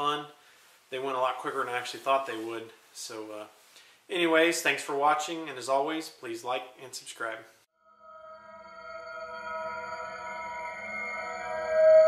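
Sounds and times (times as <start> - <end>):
synthesized chord sting: 7.9 - 12.0.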